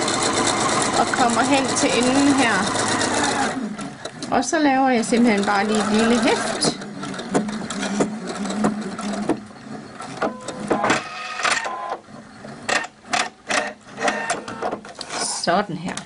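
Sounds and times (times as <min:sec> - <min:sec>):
sewing machine stitching: 0:00.0 - 0:15.4.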